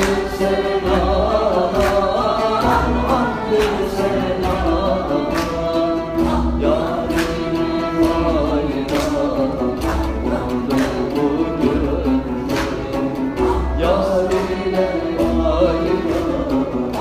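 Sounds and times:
men singing a hymn: 0:00.0 - 0:17.0
oud: 0:00.0 - 0:17.0.

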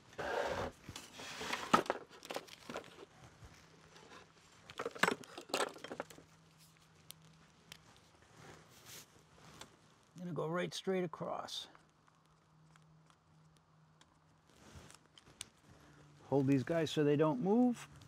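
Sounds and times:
paper rustling and crinkling: 0:00.7 - 0:09.8.

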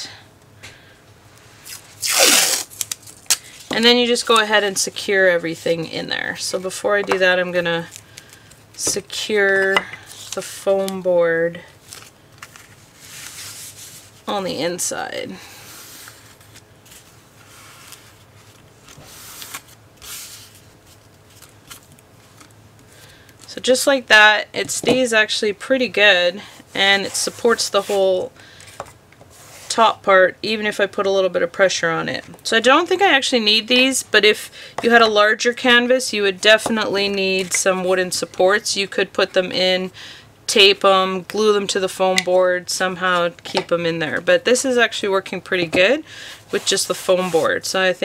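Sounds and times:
tape ripping off roll: 0:01.6 - 0:03.5.

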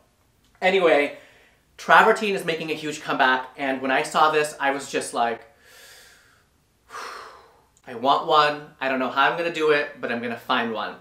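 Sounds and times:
man gasping: 0:05.6 - 0:07.7.

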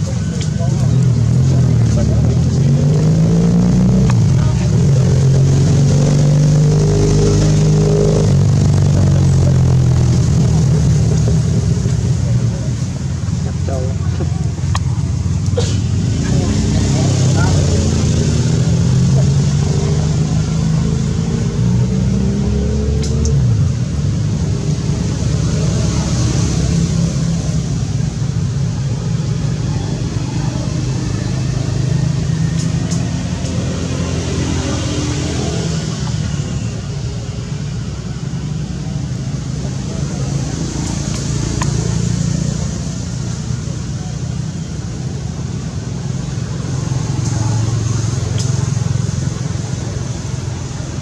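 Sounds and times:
steady low rumble: 0:00.0 - 0:22.4
indistinct voices talking: 0:00.0 - 0:23.8, 0:24.4 - 0:51.0.

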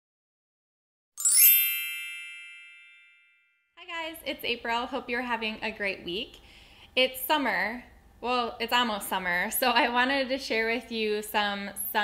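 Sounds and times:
bell-like logo chime: 0:01.2 - 0:03.7
woman speaking: 0:03.8 - 0:06.4, 0:07.0 - 0:12.0.

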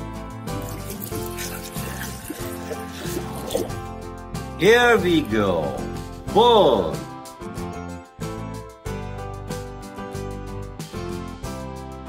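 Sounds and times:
background music: 0:00.0 - 0:12.0
water sloshing and splashing: 0:00.6 - 0:03.9.

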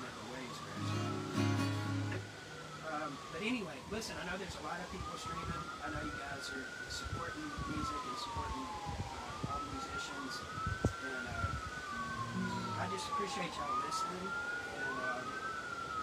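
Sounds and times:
siren wailing: 0:00.0 - 0:16.0.

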